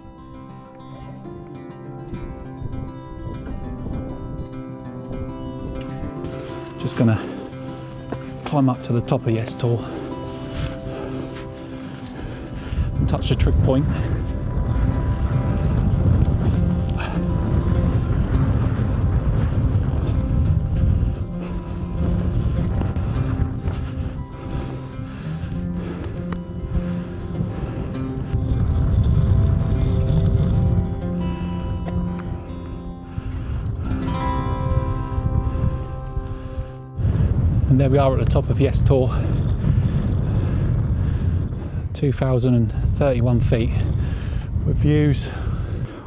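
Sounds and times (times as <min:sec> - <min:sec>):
background music sustained notes: 0:00.0 - 0:41.6.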